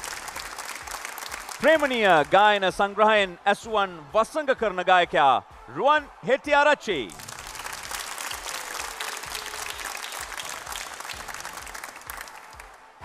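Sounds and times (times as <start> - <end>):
audience applauding: 0.0 - 2.6, 7.0 - 13.0.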